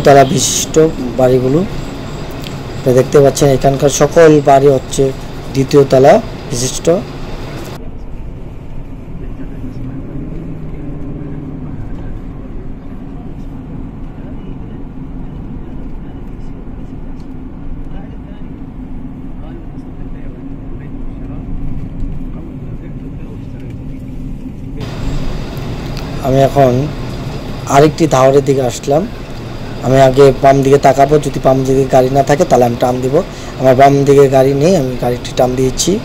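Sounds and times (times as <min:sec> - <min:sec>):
car engine and road noise: 0:00.0 - 0:36.0.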